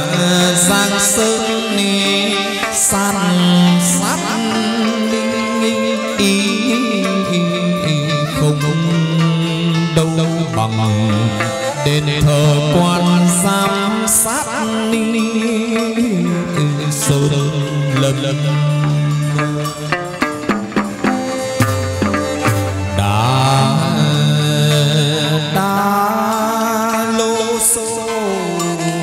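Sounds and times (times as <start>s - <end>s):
wavering held melody: 0.0s - 29.0s.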